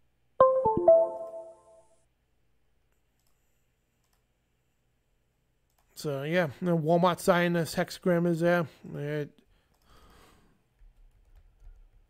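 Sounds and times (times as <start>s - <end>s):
descending electronic chime: 0.4s - 1.8s.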